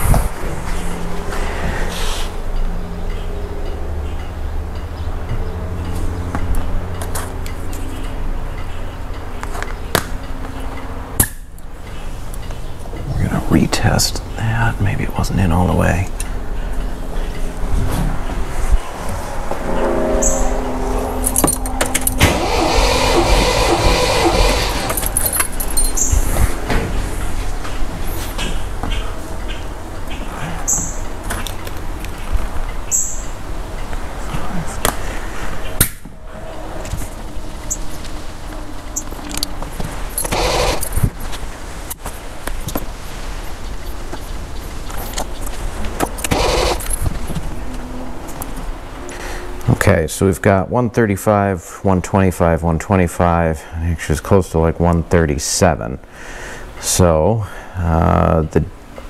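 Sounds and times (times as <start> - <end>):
engine cranking on starter motor: 21.9 - 25.7, 40.1 - 41.3, 46.0 - 47.3.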